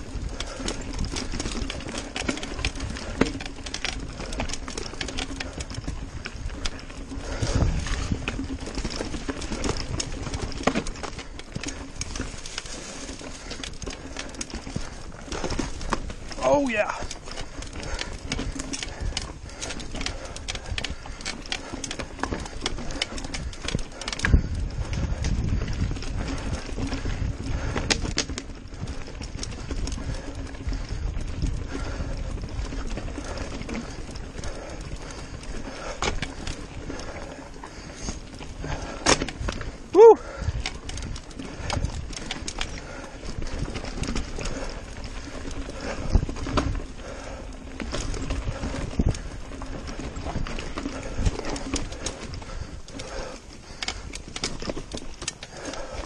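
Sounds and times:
bike rattling over rocks: 0.0s - 56.0s.

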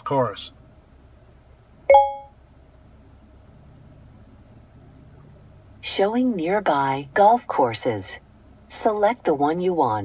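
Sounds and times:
low cabin hum: 0.0s - 10.0s
short electronic chime: 1.9s - 2.3s.

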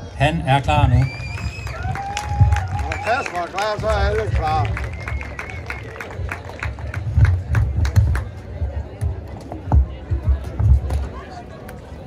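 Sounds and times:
faint crowd noise: 0.0s - 12.0s.

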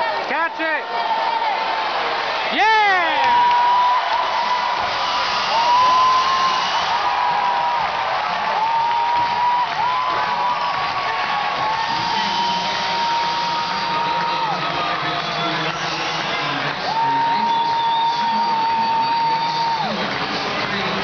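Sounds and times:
stadium crowd cheering: 0.0s - 21.0s.

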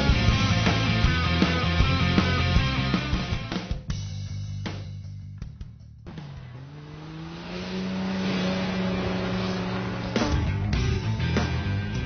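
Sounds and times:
racing car engine revving: 6.0s - 12.0s.

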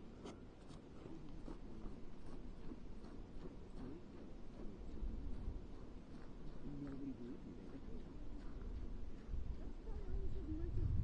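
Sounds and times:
wind rumble on microphone: 7.6s - 11.0s.

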